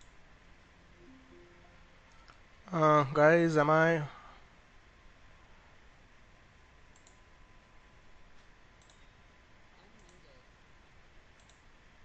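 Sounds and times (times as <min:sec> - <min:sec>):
faint computer mouse clicks: 0:06.9 - 0:07.2, 0:08.4 - 0:09.1, 0:10.0 - 0:10.2, 0:11.4 - 0:11.7.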